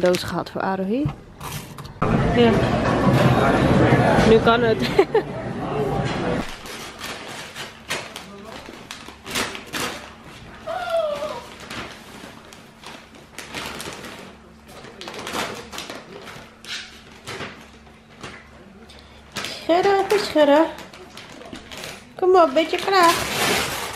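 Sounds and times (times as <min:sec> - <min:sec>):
paper crinkling and rustling: 0:06.4 - 0:23.9.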